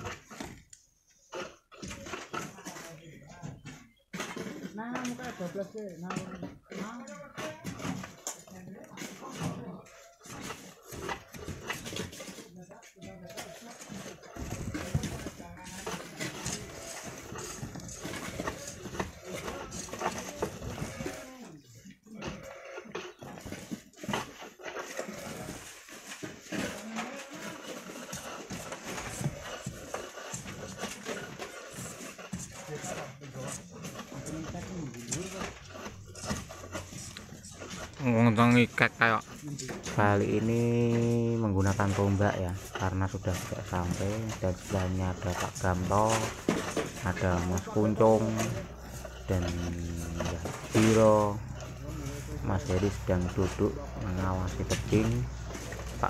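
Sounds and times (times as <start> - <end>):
people talking and calling: 1.2 - 56.0.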